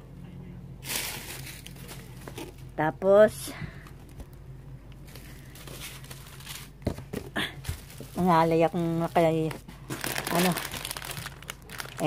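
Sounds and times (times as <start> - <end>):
plastic packaging crinkling: 0.8 - 2.5, 5.0 - 6.9, 7.6 - 12.0.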